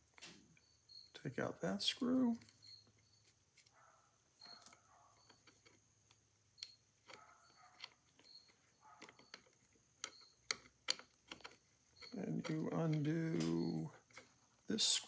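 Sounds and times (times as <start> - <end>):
small metallic clicks of screw: 4.4 - 14.4.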